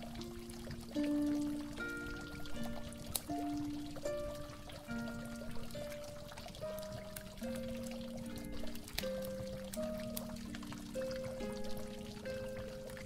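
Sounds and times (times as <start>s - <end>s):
mellow instrumental music: 0.0s - 13.0s
water drips and splashes: 0.0s - 13.0s
water pouring and trickling: 0.0s - 13.0s.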